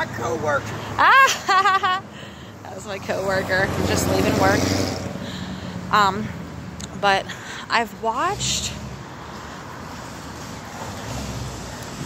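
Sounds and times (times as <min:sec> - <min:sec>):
city street background noise: 0:00.0 - 0:12.0.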